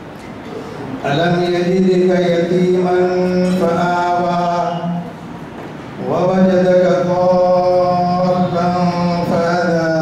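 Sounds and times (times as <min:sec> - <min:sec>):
man chanting into a microphone: 0:01.0 - 0:05.2, 0:06.0 - 0:10.0.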